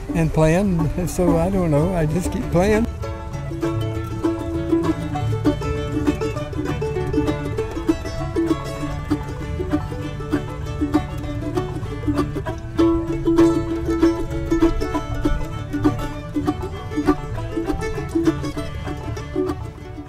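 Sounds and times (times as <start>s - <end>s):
bluegrass string instruments: 0.0s - 20.0s.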